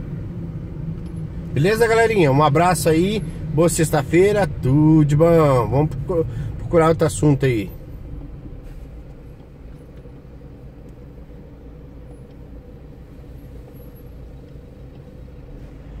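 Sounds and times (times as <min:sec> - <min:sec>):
vehicle engine idling: 0:00.0 - 0:16.0.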